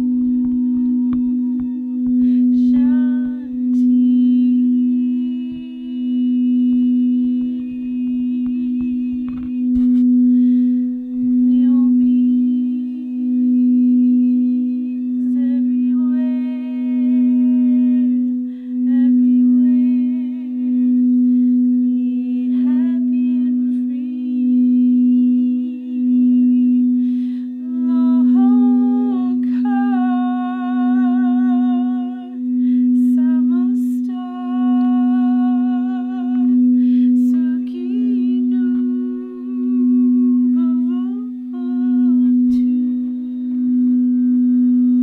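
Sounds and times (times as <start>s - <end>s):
person humming wordless tones: 0.0s - 45.0s
singing bowl low steady tone: 0.0s - 45.0s.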